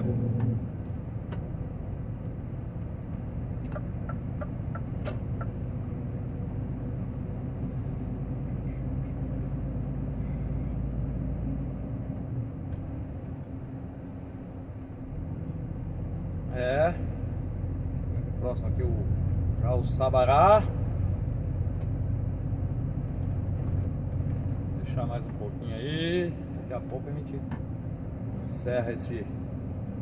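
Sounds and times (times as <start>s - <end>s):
road rumble: 0.0s - 30.0s
truck engine drone: 0.0s - 30.0s.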